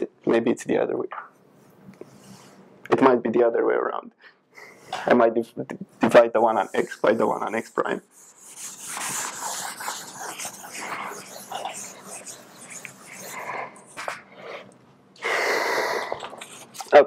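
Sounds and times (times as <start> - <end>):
chalkboard eraser rubbing blackboard: 6.4 - 14.5.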